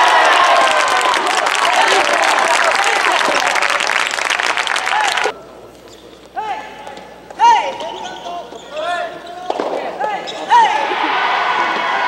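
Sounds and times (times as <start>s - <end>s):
shoes squeaking on court floor: 5.7s - 10.8s.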